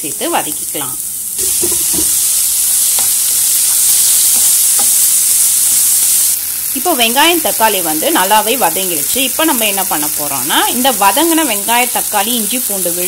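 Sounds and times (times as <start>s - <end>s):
onions sizzling in hot oil: 0.0s - 13.0s
spatula knocking pan: 1.4s - 5.8s.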